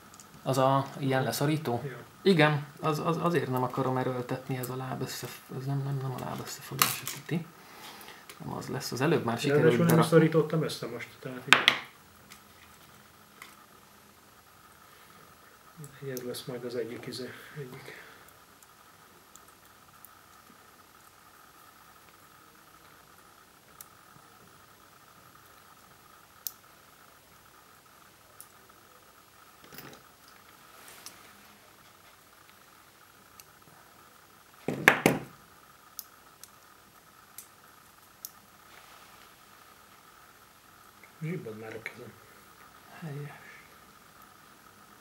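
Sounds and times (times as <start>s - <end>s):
pliers clattering on table: 29.6s - 30.0s.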